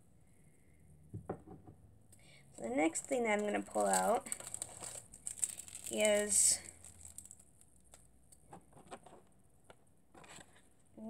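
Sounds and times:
plastic package rustling and clicking: 2.6 - 8.1.

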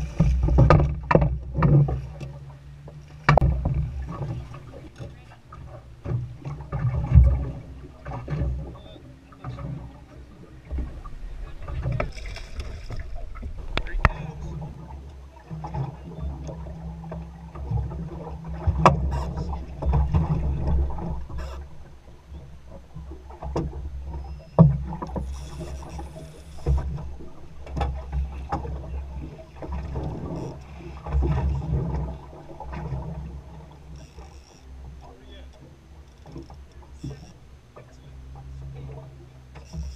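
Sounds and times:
low rumble: 0.0 - 34.8
knocks and thumps on boat: 0.0 - 39.9
wind and water against hull: 0.0 - 39.9.

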